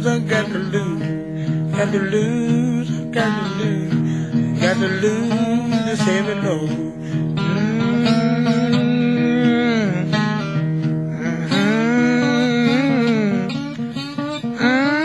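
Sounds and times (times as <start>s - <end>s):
person singing: 0.0s - 15.0s
slide guitar blues: 0.0s - 15.0s.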